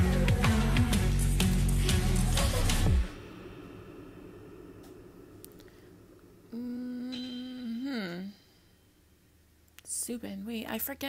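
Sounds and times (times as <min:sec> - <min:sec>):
faint low sound: 0:01.4 - 0:09.8
woman humming: 0:06.5 - 0:08.6.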